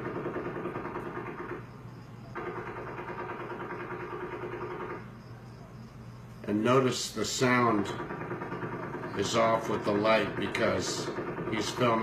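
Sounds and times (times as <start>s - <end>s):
distant automatic gunfire: 0.0s - 5.2s, 7.2s - 12.0s.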